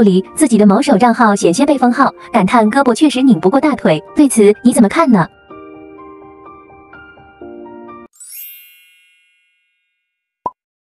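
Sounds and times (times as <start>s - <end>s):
background music: 0.0s - 9.1s
bright chime sound effect: 8.1s - 10.2s.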